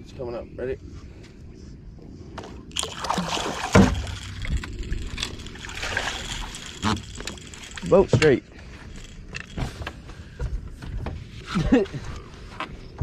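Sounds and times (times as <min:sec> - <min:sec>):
water splashing and sloshing: 0:02.3 - 0:13.0.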